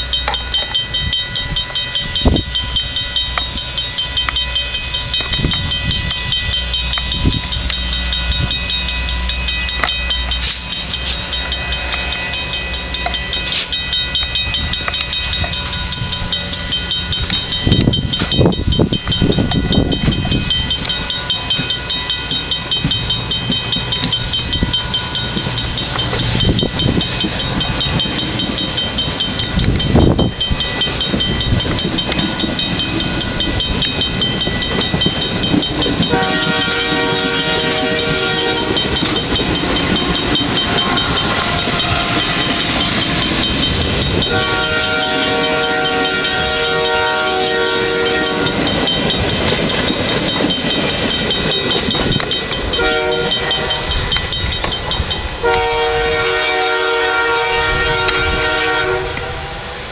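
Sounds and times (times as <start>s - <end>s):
train wheels clacking over rails: 0.0s - 55.8s
train horn blasts: 36.0s - 38.9s, 40.6s - 42.4s, 44.2s - 48.6s, 52.7s - 54.0s, 55.4s - 59.8s.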